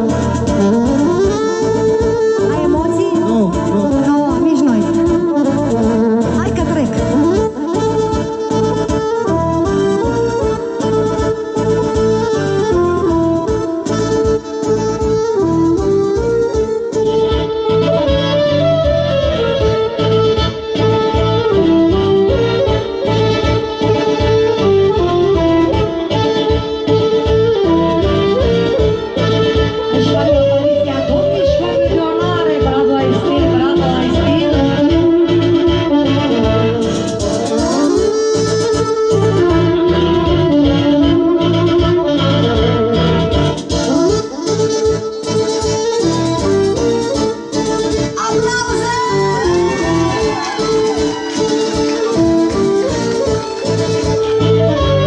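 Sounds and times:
live band playing folk music: 0.0s - 55.0s.

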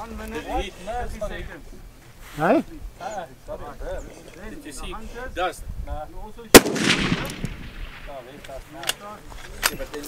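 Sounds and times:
rifle shot with echo: 6.5s - 8.5s.

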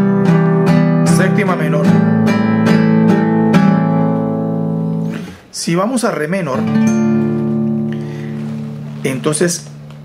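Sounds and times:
classical guitar chord ringing: 6.6s - 10.0s.

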